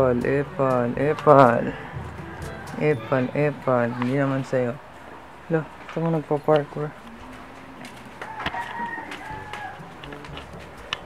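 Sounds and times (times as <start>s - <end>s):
rooster crowing: 1.8s - 3.2s, 8.2s - 10.1s.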